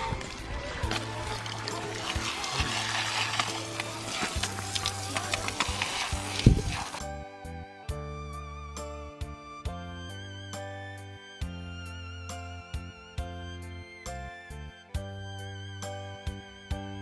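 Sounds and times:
water running from a hose: 0.0s - 7.1s
background music with low bass: 0.0s - 17.0s.

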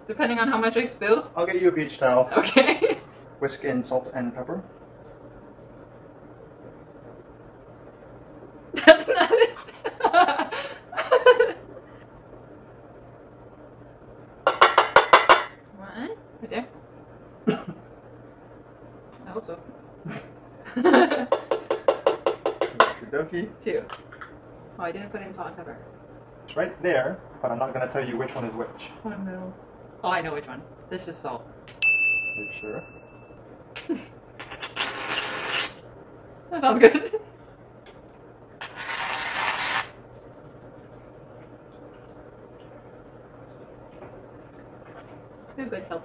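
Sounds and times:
faint low hum: 0.0s - 46.0s.

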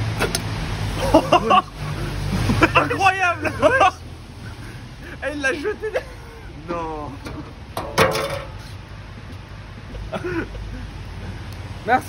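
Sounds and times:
man exclaiming loudly: 2.8s - 4.0s.

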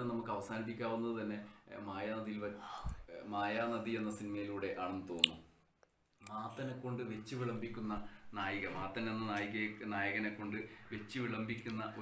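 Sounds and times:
man talking: 0.0s - 5.5s, 6.2s - 12.0s.

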